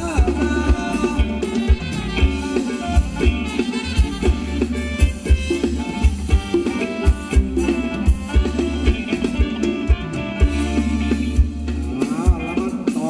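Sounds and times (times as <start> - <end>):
live band playing dance tune: 0.0 - 13.0
steady drum beat: 0.0 - 13.0.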